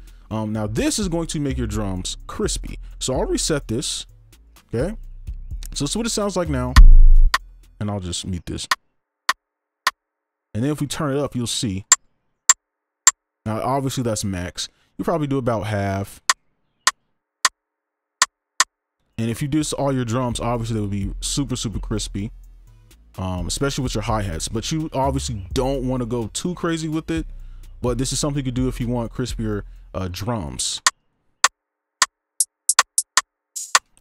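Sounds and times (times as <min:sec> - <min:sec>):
crispy rim-shot drum hits: 0:06.8 - 0:07.4
drum machine rim clicks: 0:06.8 - 0:07.4, 0:32.4 - 0:34.0
hi-hat hits: 0:06.8 - 0:07.4, 0:32.4 - 0:33.9.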